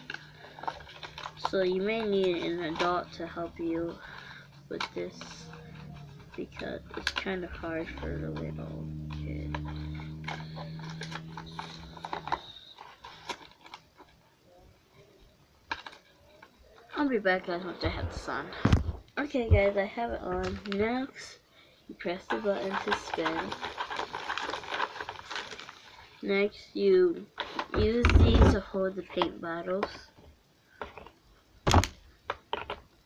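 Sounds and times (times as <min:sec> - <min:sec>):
paper card clicking and rustling: 0:00.0 - 0:03.1, 0:09.4 - 0:13.8, 0:15.7 - 0:16.0, 0:22.4 - 0:25.8
toy motor and gears rattling: 0:00.0 - 0:13.7, 0:22.2 - 0:25.9
low steady hum: 0:00.0 - 0:27.1.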